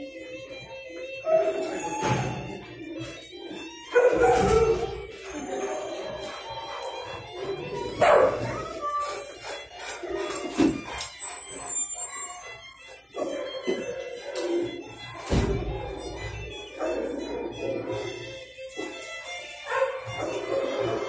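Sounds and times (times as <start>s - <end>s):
background music: 0.0s - 21.0s
dogs barking: 1.1s - 21.0s.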